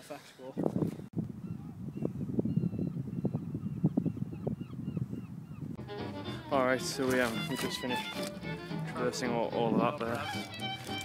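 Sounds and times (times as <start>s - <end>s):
wind buffeting microphone: 0.5s - 6.9s
faint bird calls: 1.4s - 6.4s.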